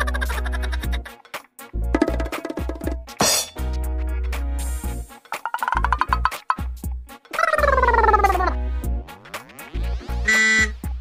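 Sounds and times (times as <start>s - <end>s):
comic background music: 0.0s - 11.0s
bright buzzing electronic tone: 10.1s - 10.8s.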